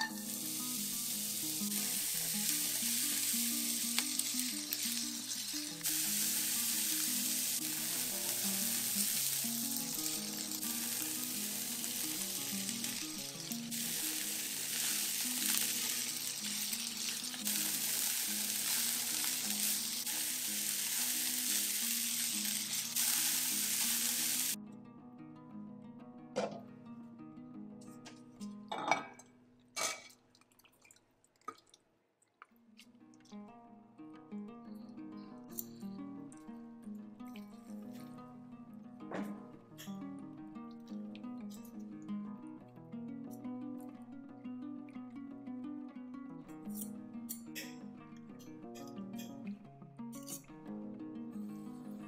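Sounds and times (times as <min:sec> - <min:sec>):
onion sizzling in frying pan: 0:00.0 - 0:24.6.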